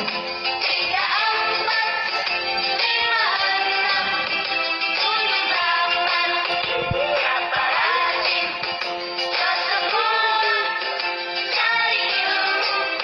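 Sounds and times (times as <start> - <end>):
backing music: 0.0 - 13.0.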